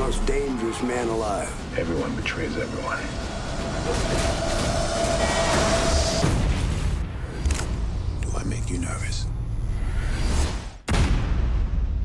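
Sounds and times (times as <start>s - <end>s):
loud rushing rumbling noise: 0.0s - 7.2s.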